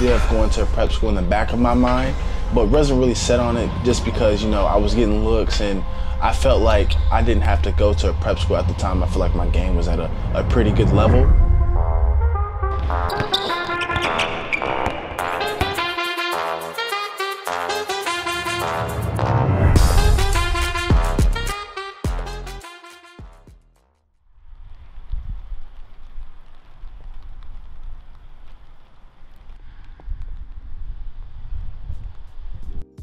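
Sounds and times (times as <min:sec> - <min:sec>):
wind rumbling on microphone: 0:00.0 - 0:12.2, 0:24.4 - 0:32.8
background music: 0:00.0 - 0:23.9.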